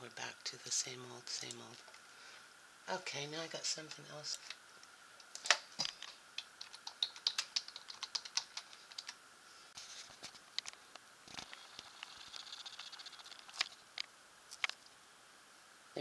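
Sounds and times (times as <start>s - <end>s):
faint fast ticking: 6.4s - 9.2s, 11.5s - 13.8s
computer keyboard key clicks: 6.6s - 9.2s.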